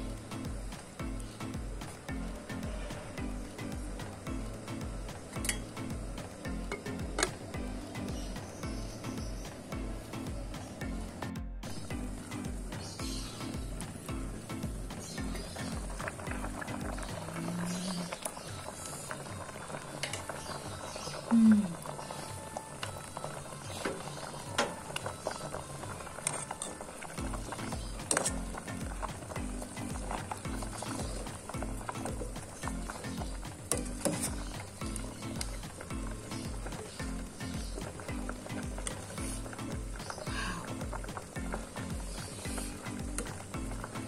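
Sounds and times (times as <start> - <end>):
curry bubbling: 0.0 - 11.1, 11.7 - 44.0
background music with beat: 0.0 - 44.0.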